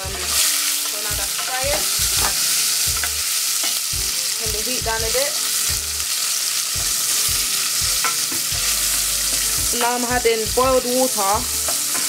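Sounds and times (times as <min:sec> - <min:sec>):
onions sizzling in hot oil: 0:00.0 - 0:12.0.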